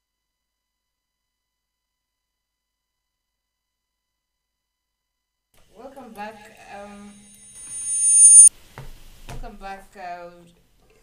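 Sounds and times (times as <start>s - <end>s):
audio feedback squeal: 6.5s - 8.5s.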